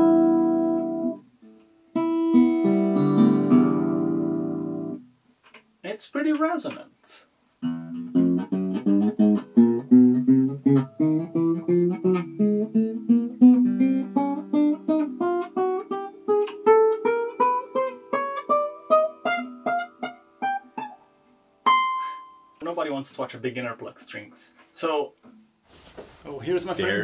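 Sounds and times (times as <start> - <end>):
acoustic guitar picked notes: 0.0 - 5.2, 7.6 - 22.7.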